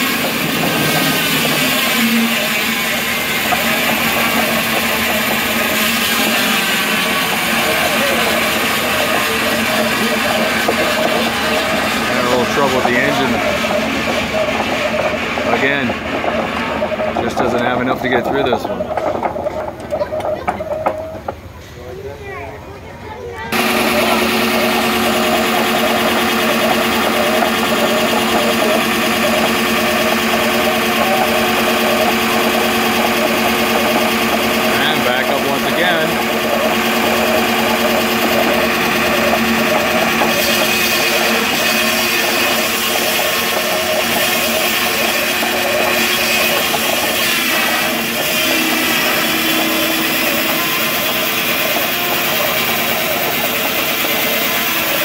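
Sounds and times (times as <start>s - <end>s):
saw blade cutting log: 0.0s - 21.3s, 23.5s - 55.0s
circular saw humming and whining: 0.0s - 21.4s, 23.5s - 55.0s.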